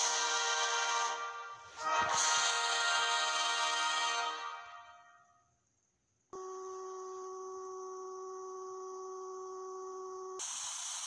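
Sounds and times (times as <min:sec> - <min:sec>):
tv static hiss: 0:10.4 - 0:11.0.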